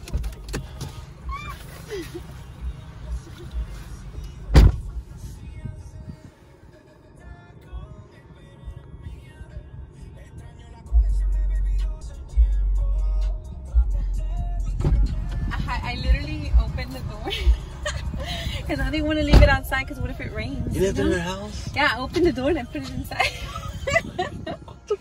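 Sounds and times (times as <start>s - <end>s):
quiet music: 0.0s - 25.0s
car door slamming: 4.4s - 5.0s, 14.8s - 15.5s, 19.1s - 19.7s
loud low rumble: 10.9s - 24.5s.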